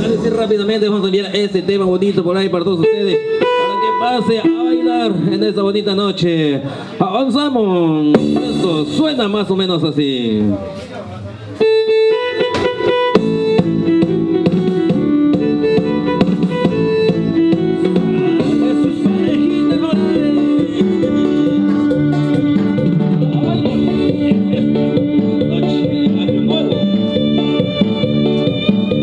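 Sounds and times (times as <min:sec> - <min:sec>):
keyboard melody guitar and violin: 0:00.0 - 0:29.0
programmed drum beat: 0:08.0 - 0:09.7, 0:12.4 - 0:29.0.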